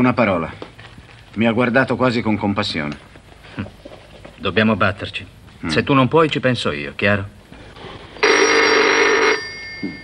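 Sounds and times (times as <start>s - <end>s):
desk telephone ringing: 8.2s - 10.0s.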